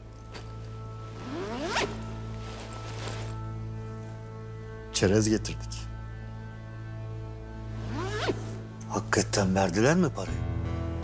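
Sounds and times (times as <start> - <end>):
background music: 0.0 - 11.0
soft rustling: 0.2 - 4.2
zipper pulled open: 0.3 - 3.5, 7.8 - 8.6.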